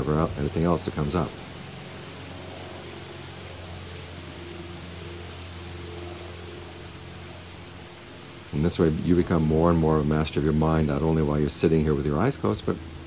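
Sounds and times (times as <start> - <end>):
low hum: 0.0 - 13.0
steady background hiss: 0.0 - 13.0.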